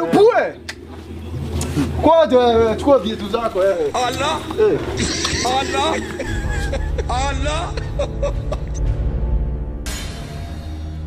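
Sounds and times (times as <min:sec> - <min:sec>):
low steady background rumble: 0:00.0 - 0:09.8
man's voice: 0:02.0 - 0:08.2.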